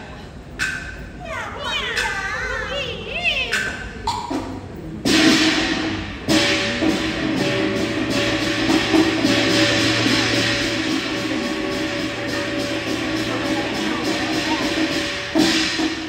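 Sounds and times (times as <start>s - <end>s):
percussion crash: 3.6s - 16.0s
band playing instrumental music: 4.3s - 16.0s.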